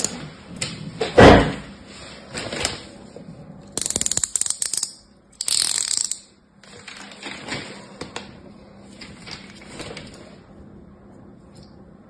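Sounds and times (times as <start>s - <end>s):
plastic wrap rustling: 6.6s - 10.4s.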